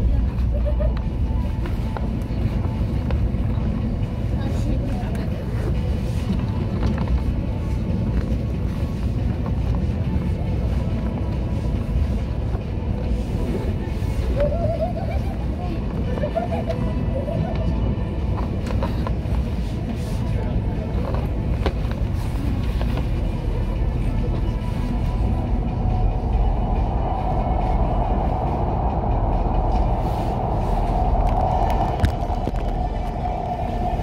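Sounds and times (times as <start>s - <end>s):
train wheels rumbling on rail: 0.0s - 34.0s
rough higher hum: 17.8s - 34.0s.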